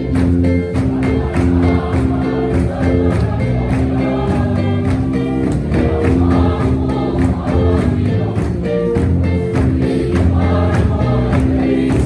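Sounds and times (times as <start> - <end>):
congregation singing a hymn: 0.0 - 12.0
steady beat: 0.0 - 12.0.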